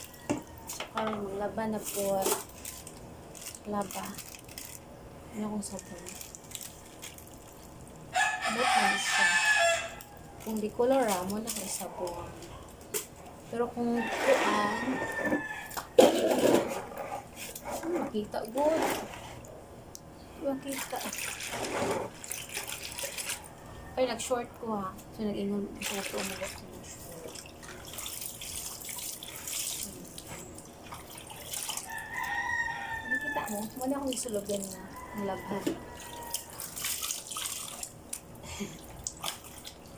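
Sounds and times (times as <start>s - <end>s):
rooster crowing: 0.0s - 0.9s, 8.1s - 10.5s, 13.8s - 16.0s, 23.4s - 24.0s, 31.8s - 33.7s, 34.9s - 36.8s
water splashing and sloshing: 0.0s - 4.9s, 5.6s - 9.3s, 9.9s - 19.6s, 20.6s - 23.7s, 25.4s - 39.9s.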